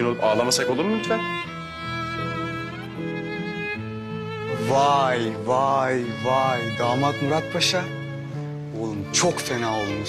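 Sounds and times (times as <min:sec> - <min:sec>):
violin playing long notes: 0:00.0 - 0:10.0.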